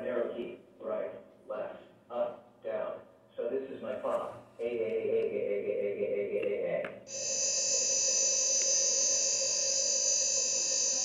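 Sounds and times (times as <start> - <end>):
high-pitched electronic tone: 7.1 - 11.0.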